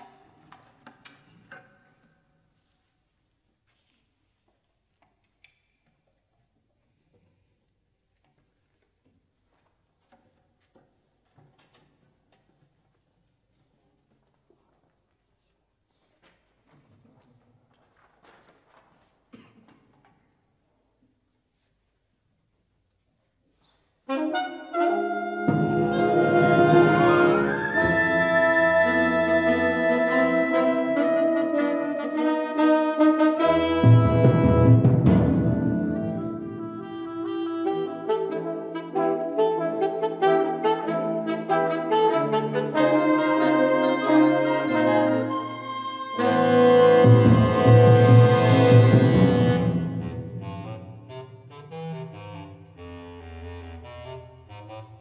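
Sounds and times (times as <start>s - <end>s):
wind ensemble playing chords: 24.1s - 55.0s.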